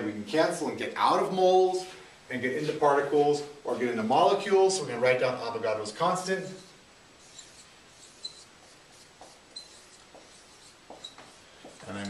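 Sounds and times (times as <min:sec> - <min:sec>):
marker squeaking on whiteboard: 0:06.4 - 0:12.0.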